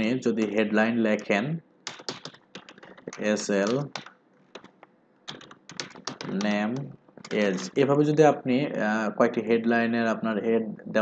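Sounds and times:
computer keyboard typing: 1.8 - 7.8.

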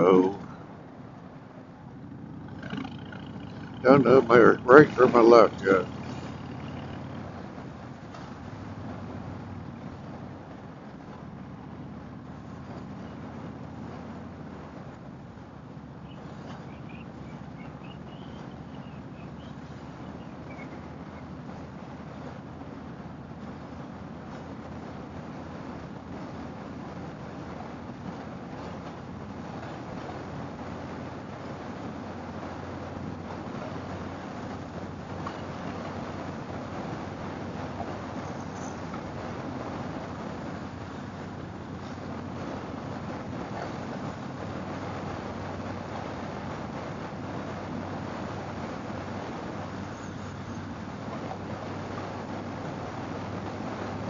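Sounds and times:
motorcycle engine humming: 0.0 - 54.0
tyre noise: 1.9 - 14.7.

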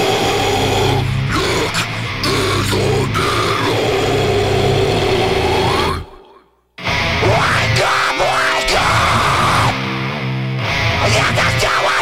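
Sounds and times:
heavy distorted guitars: 0.0 - 6.2, 6.8 - 12.0
long held vocal: 0.0 - 6.6, 7.2 - 9.9.

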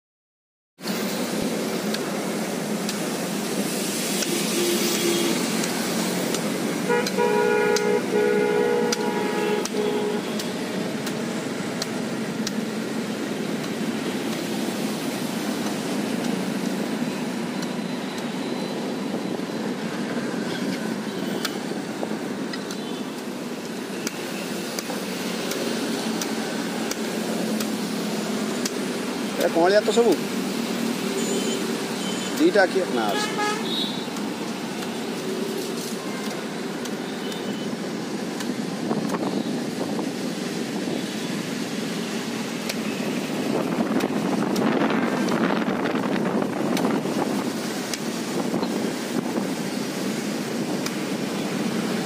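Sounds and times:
roadside traffic noise: 0.8 - 52.0
vehicle horn: 4.6 - 5.4, 6.8 - 10.5, 31.2 - 32.4, 33.0 - 34.1, 36.0 - 36.4.

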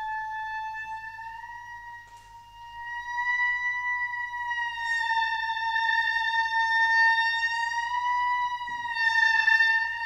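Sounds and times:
oboe holding high note: 0.0 - 10.0.

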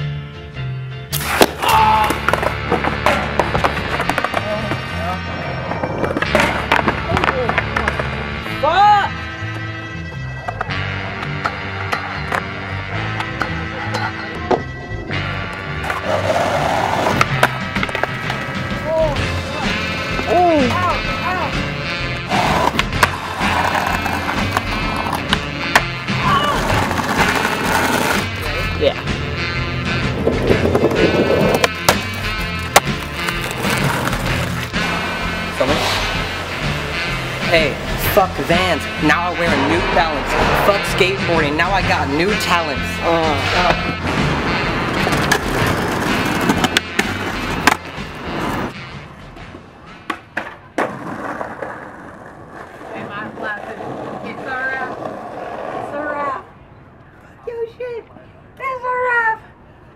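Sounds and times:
skateboard wheels rolling on pavement: 1.1 - 56.7
skateboard clacks: 1.4 - 5.0, 5.8 - 8.3, 10.4 - 14.8, 17.0 - 18.8, 22.2 - 28.2, 30.1 - 34.9, 43.6 - 48.7, 49.3 - 55.8.

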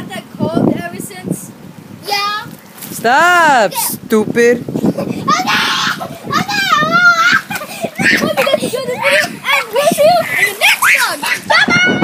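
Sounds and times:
boys laughing: 4.7 - 12.0
boys yelling: 5.1 - 12.0.

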